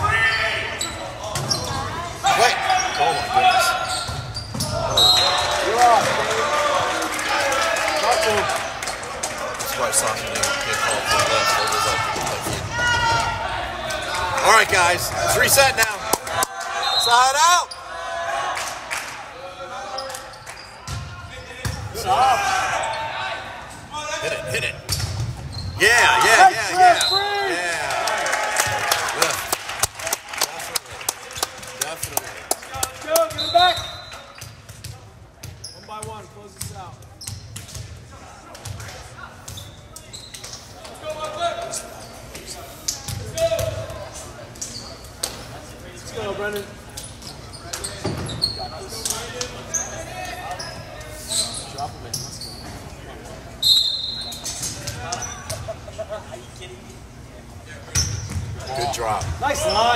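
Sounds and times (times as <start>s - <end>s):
crowd and player chatter: 0.0s - 59.9s
sneaker squeaks: 0.3s - 5.5s, 19.9s - 22.0s, 24.8s - 25.9s, 33.3s - 36.2s, 37.1s - 37.9s, 39.4s - 40.8s, 41.7s - 43.7s, 44.5s - 45.2s, 47.0s - 53.0s, 53.6s - 55.7s, 57.9s - 59.9s.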